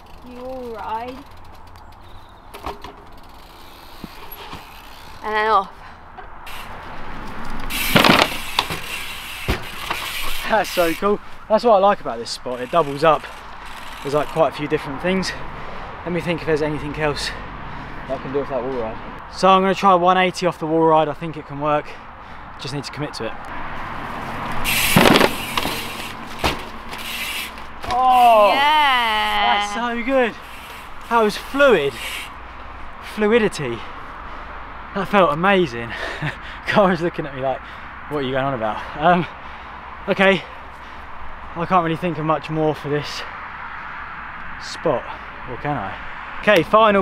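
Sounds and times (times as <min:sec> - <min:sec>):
bike clicks and knocks: 0:00.0 - 0:05.3, 0:06.1 - 0:11.0, 0:24.5 - 0:28.0
rushing noise of bike riding: 0:00.0 - 0:19.2, 0:23.3 - 0:35.4, 0:36.2 - 0:47.0
bike landing thump: 0:07.7 - 0:10.2, 0:24.7 - 0:28.0.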